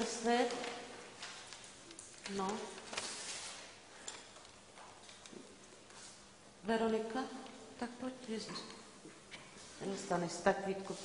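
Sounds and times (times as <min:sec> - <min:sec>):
pupils rustling at desks: 0:00.0 - 0:11.0.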